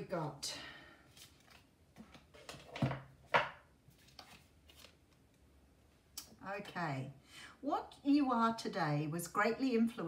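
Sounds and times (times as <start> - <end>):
cards being handled: 1.1 - 2.8, 3.9 - 5.4.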